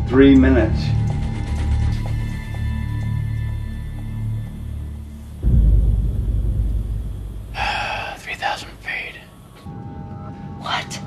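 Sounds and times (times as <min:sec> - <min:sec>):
deep rumble: 0:00.0 - 0:10.6.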